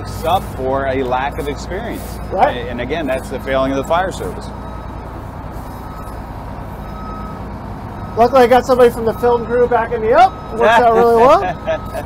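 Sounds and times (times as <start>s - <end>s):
diesel engine running at low speed: 0.0s - 12.0s
high back-up beep: 0.0s - 12.0s.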